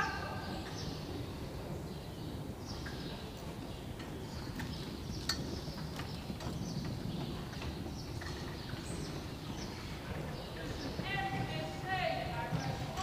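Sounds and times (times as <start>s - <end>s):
rumble of hooves and wheels: 0.0s - 13.0s.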